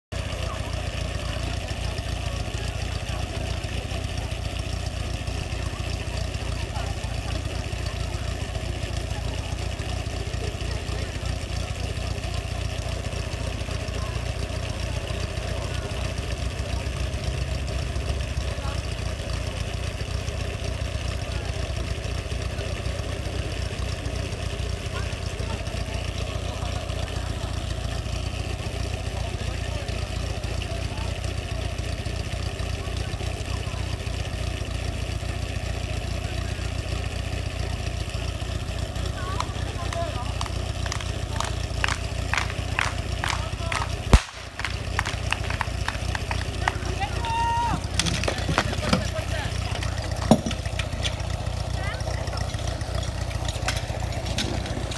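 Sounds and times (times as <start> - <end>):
fire pump engine idling: 0.1 - 54.9.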